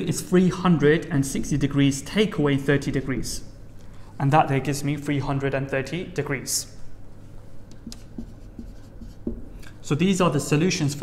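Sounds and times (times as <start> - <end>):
marker pen writing on whiteboard: 7.7 - 9.6.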